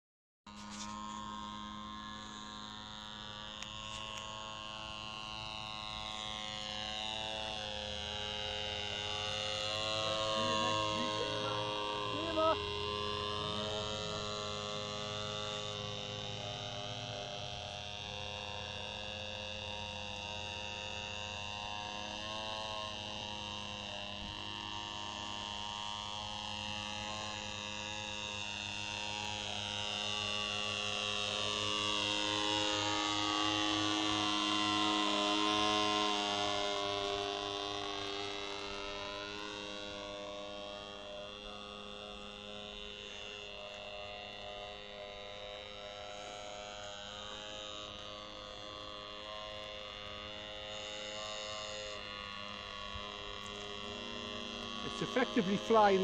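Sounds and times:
model aeroplane motor droning: 0:00.5 - 0:56.0.

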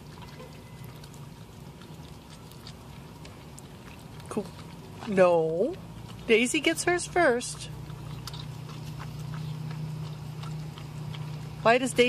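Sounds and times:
dog licking ice cream: 0:00.0 - 0:12.0
low steady hum: 0:00.0 - 0:12.0.

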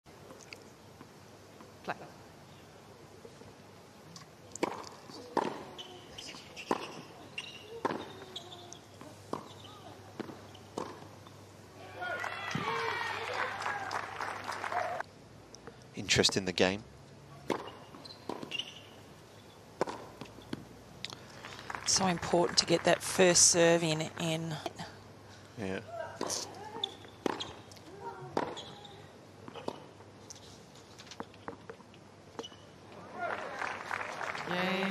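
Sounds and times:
tennis racket hitting ball: 0:04.6 - 0:05.7, 0:07.7 - 0:08.3, 0:10.2 - 0:11.1, 0:17.5 - 0:18.6, 0:19.8 - 0:20.6
tennis ball bouncing: 0:04.6 - 0:06.0, 0:06.6 - 0:11.4, 0:17.4 - 0:19.0, 0:19.8 - 0:20.8, 0:26.2 - 0:28.7, 0:29.4 - 0:30.0.

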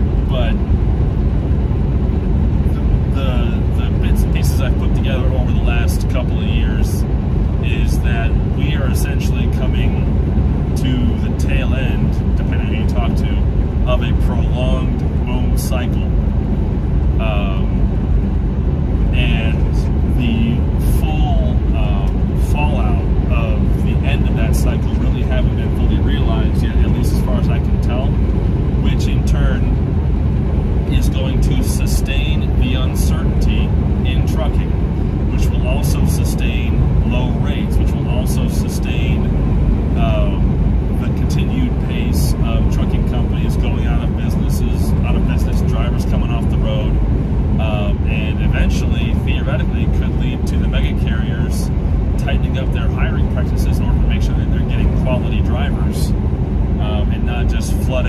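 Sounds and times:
man talking: 0:00.0 - 0:00.6, 0:02.7 - 0:07.0, 0:07.6 - 0:16.2, 0:17.2 - 0:17.9, 0:19.1 - 0:28.2, 0:28.8 - 0:29.8, 0:30.8 - 0:39.3, 0:40.0 - 0:47.0, 0:47.6 - 0:56.2, 0:56.8 - 0:58.0
road noise: 0:00.0 - 0:58.0
truck engine drone: 0:00.0 - 0:58.0.

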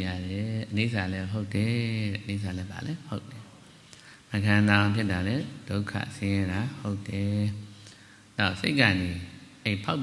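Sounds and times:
man chanting: 0:00.0 - 0:03.6, 0:04.3 - 0:07.8
short breaths: 0:03.6 - 0:04.3, 0:07.7 - 0:08.4.

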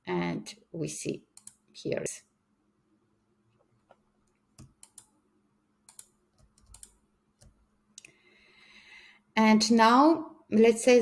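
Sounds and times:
computer mouse clicks: 0:01.3 - 0:01.6, 0:03.8 - 0:05.2, 0:05.9 - 0:08.1.

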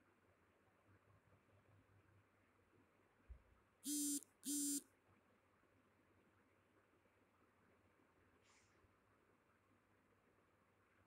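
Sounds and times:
short electronic beeps: 0:03.9 - 0:04.8.

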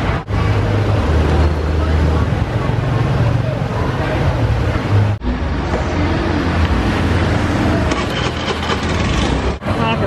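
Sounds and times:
people talking: 0:00.0 - 0:06.7, 0:09.6 - 0:10.0
traffic engine hum: 0:00.0 - 0:10.0.

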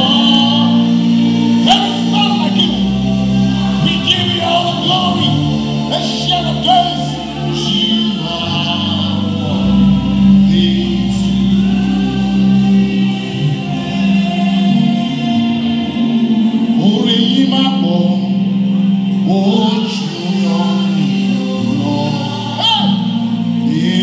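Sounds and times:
women's choir singing: 0:00.0 - 0:17.1, 0:20.1 - 0:24.0
held low bass notes: 0:00.0 - 0:24.0
male lead singer: 0:00.0 - 0:24.0.

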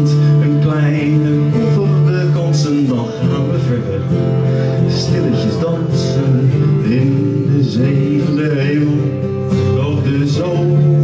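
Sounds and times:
acoustic guitar accompaniment: 0:00.0 - 0:11.0.

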